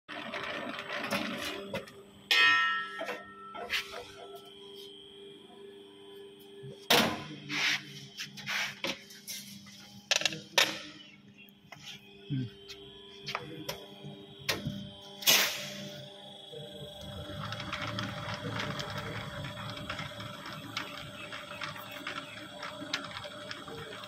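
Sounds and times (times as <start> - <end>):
machine motor hum: 3.0 - 24.0.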